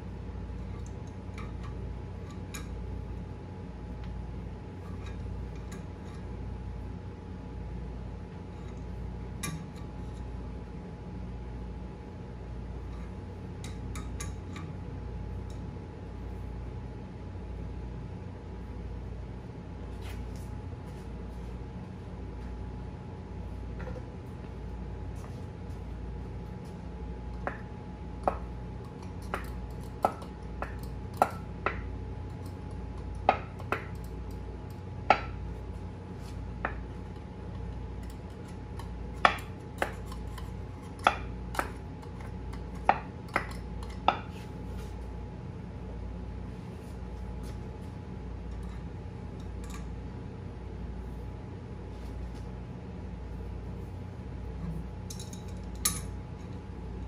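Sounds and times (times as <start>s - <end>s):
steady shop hum: 0.0s - 57.0s.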